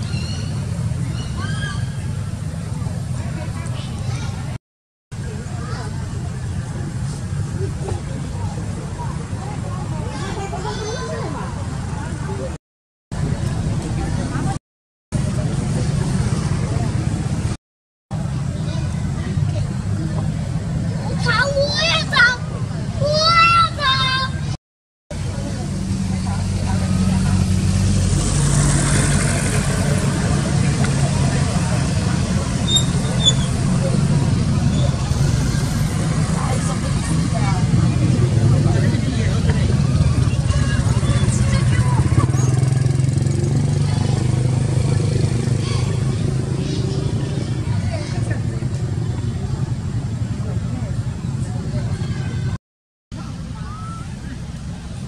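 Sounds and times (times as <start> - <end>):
low engine hum: 22.5 - 52.5
baby monkey squealing: 32.7 - 33.5.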